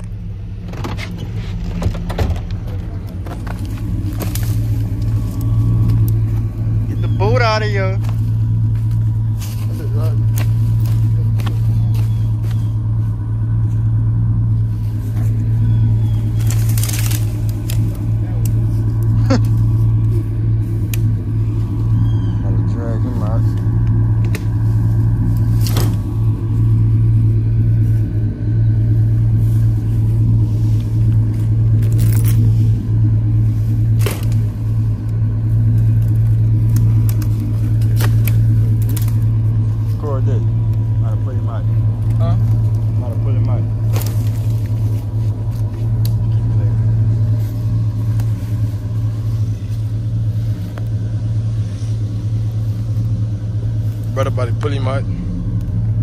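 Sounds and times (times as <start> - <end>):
pickup truck engine running: 0.0 - 56.0.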